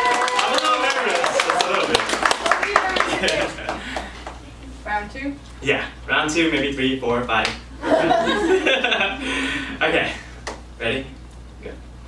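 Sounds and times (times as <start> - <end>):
small audience clapping: 0.0 - 4.5.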